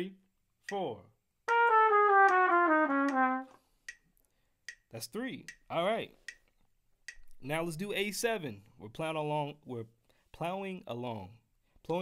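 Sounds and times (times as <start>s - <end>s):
trumpet playing quick descending line: 1.5s - 3.6s.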